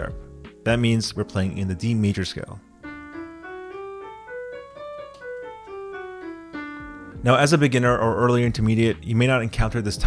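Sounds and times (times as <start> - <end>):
piano playing a scale: 0.0 - 10.0.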